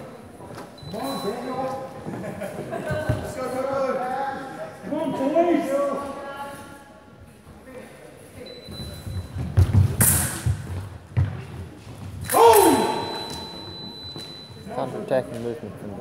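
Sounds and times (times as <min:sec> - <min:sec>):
footwork thumping on floor: 0:09.0 - 0:12.2
person shouting: 0:12.3 - 0:13.3
scoring machine high beep: 0:13.0 - 0:14.6.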